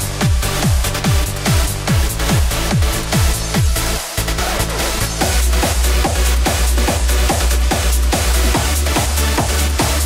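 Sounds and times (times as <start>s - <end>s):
electronic dance music: 0.0s - 10.0s.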